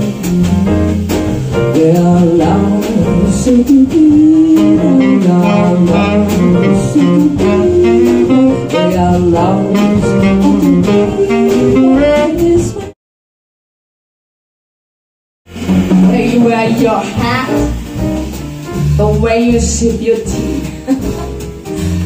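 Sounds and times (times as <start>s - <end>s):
jazz combo playing: 0.0s - 13.0s, 15.5s - 22.0s
person singing: 1.7s - 12.9s
tenor saxophone: 4.2s - 12.9s.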